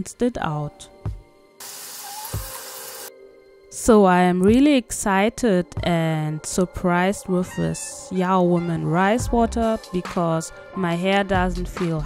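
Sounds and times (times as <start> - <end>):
shower water spraying: 1.6 - 3.1.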